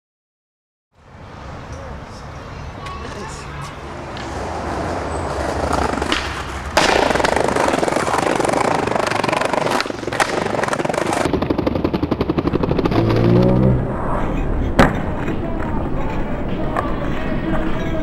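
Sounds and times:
skateboard wheels rolling on concrete: 1.0s - 18.0s
skateboard kickflip clack: 5.6s - 11.3s
falling pitched sound: 11.4s - 16.3s.

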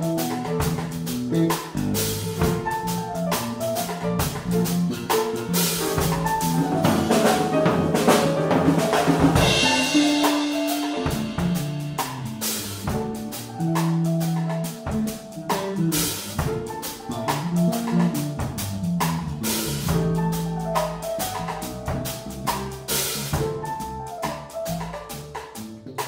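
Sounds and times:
drum kit: 0.0s - 26.0s
electric bass guitar: 0.0s - 26.0s
grand piano: 0.0s - 26.0s.

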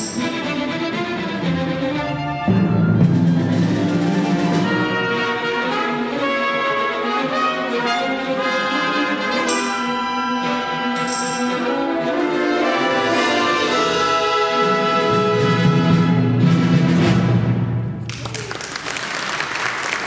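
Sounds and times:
strings: 0.0s - 17.7s
timpani: 0.0s - 18.2s
brass: 1.2s - 18.0s.

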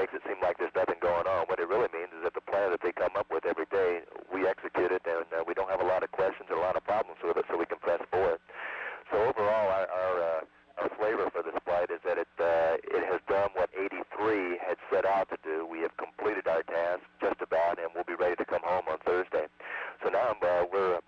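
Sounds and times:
man speaking over radio: 0.0s - 21.0s.

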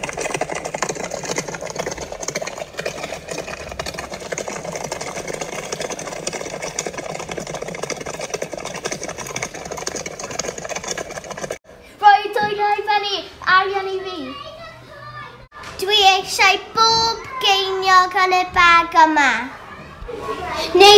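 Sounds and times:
galloping horse hooves: 0.0s - 11.6s.

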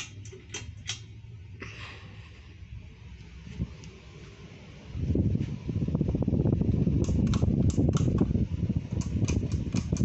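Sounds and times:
ceiling fan running: 0.0s - 10.0s.

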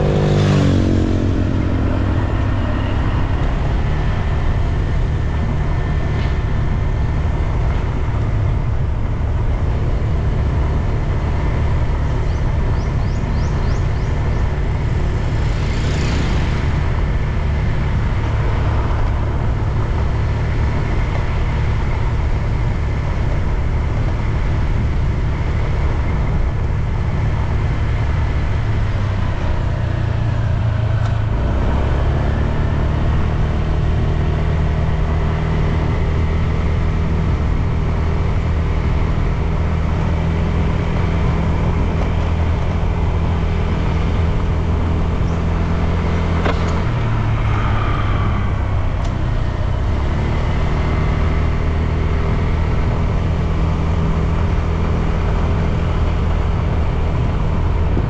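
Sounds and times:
road and wind noise: 0.0s - 58.0s
vehicle engine running: 0.0s - 58.0s.

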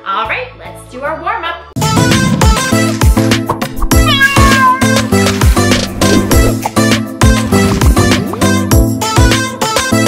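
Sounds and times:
upbeat music with steady beat: 1.8s - 10.0s
cat meowing: 3.8s - 5.1s.

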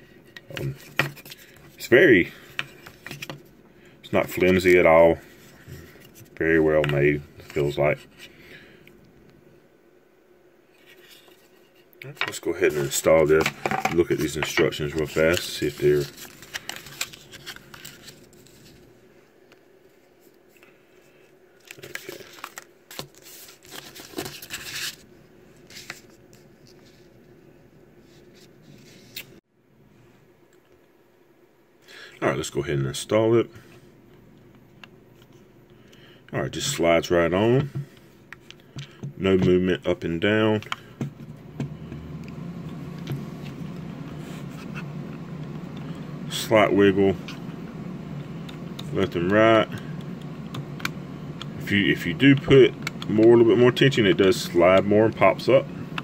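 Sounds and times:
low background hum: 0.0s - 56.0s
paper rustling and crinkling: 12.6s - 18.9s, 21.6s - 27.1s.

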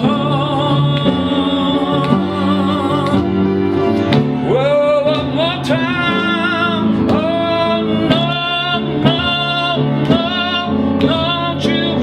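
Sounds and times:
man singing gospel: 0.0s - 3.4s, 4.4s - 12.0s
piano accompaniment: 0.0s - 12.0s.

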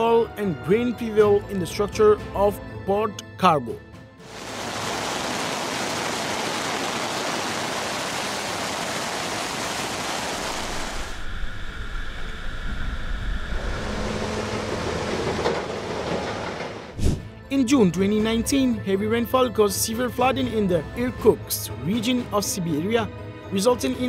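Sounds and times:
flooded river rushing: 4.3s - 11.1s.

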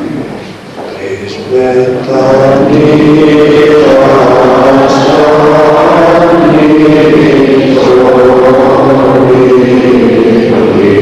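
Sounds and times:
slow sung chanting: 0.0s - 11.0s.

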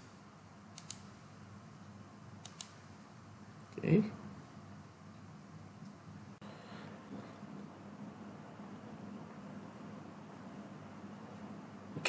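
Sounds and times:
faint steady hum: 0.0s - 12.0s
computer mouse clicking: 0.7s - 1.1s, 2.4s - 2.8s.

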